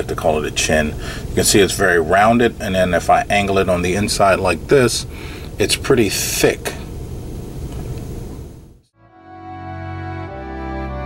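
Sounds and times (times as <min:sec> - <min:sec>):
room noise hiss: 0:00.0 - 0:08.9.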